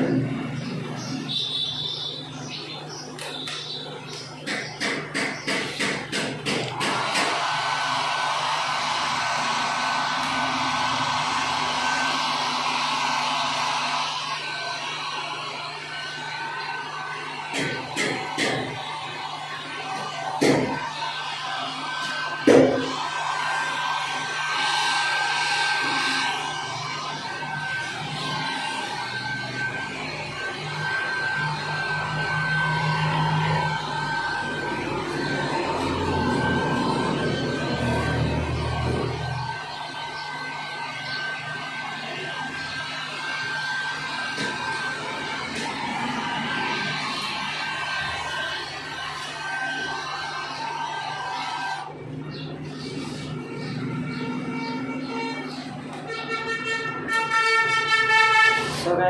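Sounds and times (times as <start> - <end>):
sharp knocks: 4.4 - 7.4
hair dryer blowing: 6.6 - 51.9.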